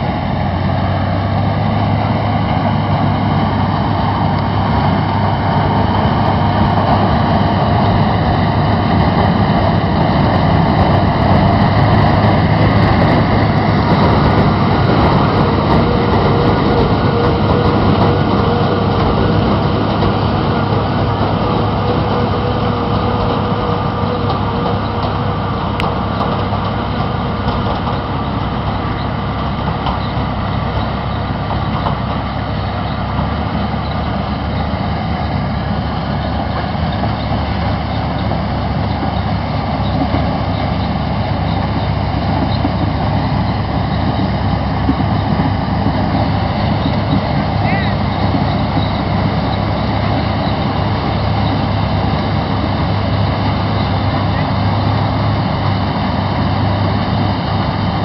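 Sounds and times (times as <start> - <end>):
tractor and corn picker drone: 0.0 - 58.0.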